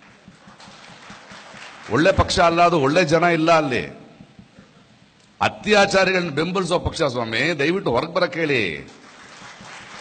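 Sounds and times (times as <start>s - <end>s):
faint background noise: 0.0s - 10.0s
man speaking into microphone: 1.9s - 4.2s, 5.4s - 9.0s.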